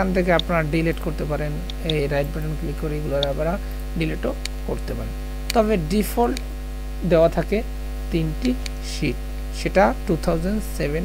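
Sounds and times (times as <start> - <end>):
man's voice: 0.0 - 6.4, 7.0 - 11.0
electrical mains hum: 0.0 - 11.0.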